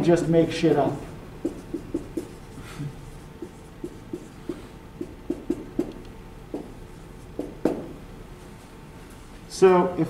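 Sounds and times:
marker scraping on whiteboard: 0:01.4 - 0:06.0.

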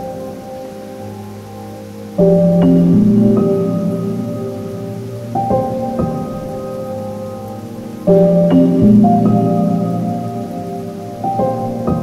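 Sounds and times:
ambient synthesizer music: 0:00.0 - 0:12.0
faint grainy hiss: 0:00.0 - 0:12.0.

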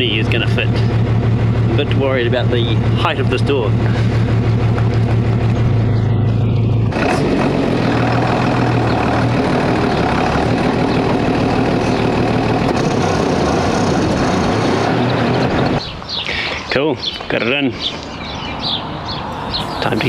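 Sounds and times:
bus engine running: 0:00.0 - 0:20.0.

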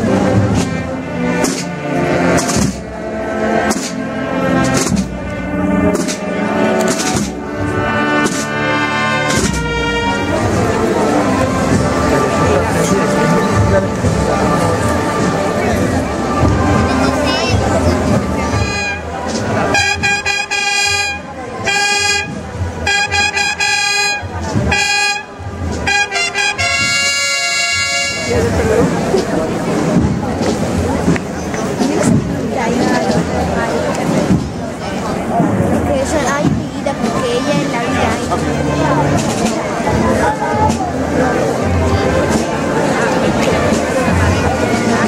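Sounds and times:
low drumming: 0:00.0 - 0:27.2, 0:27.8 - 0:45.0
brass band holding chords: 0:00.0 - 0:45.0
percussion strikes: 0:00.0 - 0:45.0.

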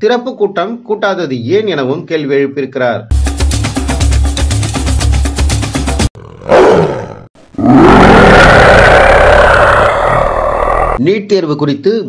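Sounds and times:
music with fast beat: 0:03.1 - 0:06.1
tiger roaring: 0:06.2 - 0:11.0.

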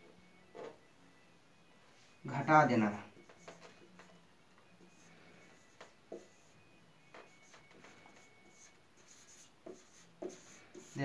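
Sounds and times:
marker squeaking on whiteboard: 0:00.4 - 0:00.8, 0:03.1 - 0:04.2, 0:04.8 - 0:11.0.

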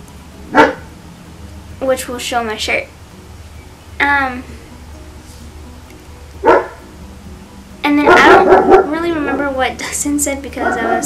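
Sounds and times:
soft background music: 0:00.0 - 0:11.0
dog bark: 0:00.6 - 0:00.9, 0:06.4 - 0:06.8, 0:08.1 - 0:08.9.

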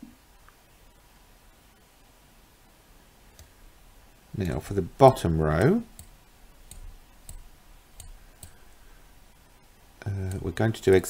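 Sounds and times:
computer mouse clicking: 0:03.3 - 0:03.6, 0:05.5 - 0:08.6, 0:10.1 - 0:11.0.

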